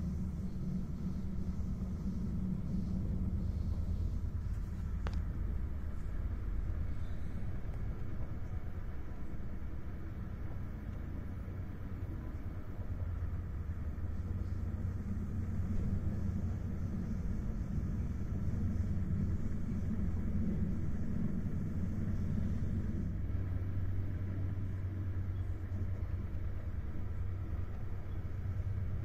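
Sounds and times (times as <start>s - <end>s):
train wheels rolling on rails: 0.0s - 29.0s.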